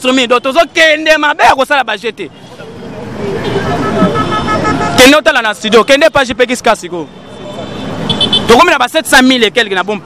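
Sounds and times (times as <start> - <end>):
street traffic: 0.0 - 10.0
vehicle horn tooting: 3.4 - 6.0, 8.0 - 8.6.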